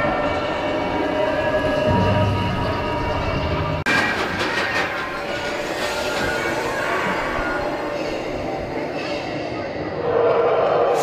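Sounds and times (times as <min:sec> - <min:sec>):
roller coaster rumble and rattle: 0:00.0 - 0:11.0.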